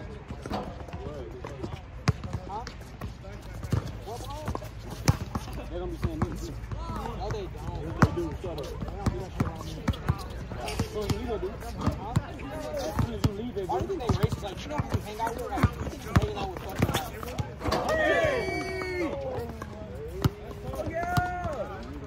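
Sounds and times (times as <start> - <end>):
players talking: 0.0 - 22.0
basketball bouncing on court: 0.4 - 17.5, 18.5 - 21.7.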